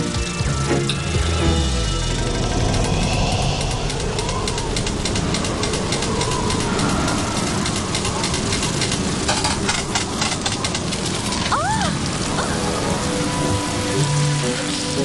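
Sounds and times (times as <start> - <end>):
water spraying from sprinklers: 3.6 - 15.0.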